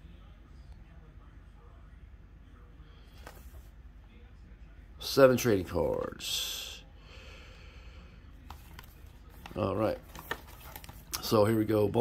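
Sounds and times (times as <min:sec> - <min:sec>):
shrink-wrapped box handling: 0:08.8 - 0:11.1.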